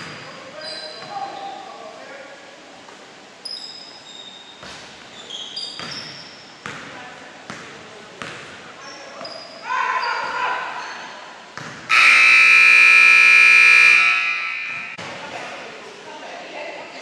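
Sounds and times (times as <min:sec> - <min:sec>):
scoreboard horn: 0:11.9 - 0:15.0.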